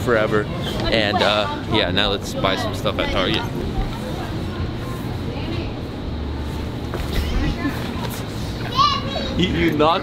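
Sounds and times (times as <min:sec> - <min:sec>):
people talking and laughing: 0:00.0 - 0:10.0
steady low hum: 0:00.0 - 0:10.0.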